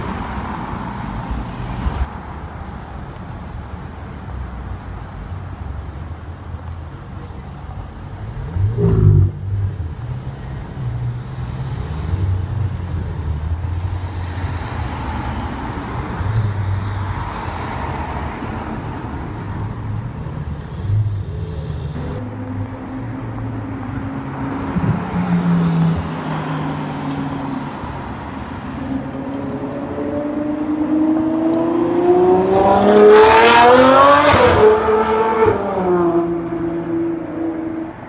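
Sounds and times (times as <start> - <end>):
car engines low rumble: 0.0 - 38.0
car passing close by: 24.0 - 38.0.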